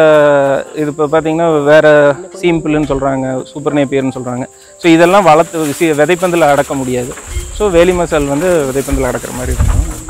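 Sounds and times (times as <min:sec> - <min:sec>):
crickets chirring: 0:00.0 - 0:10.0
man talking: 0:00.0 - 0:10.0.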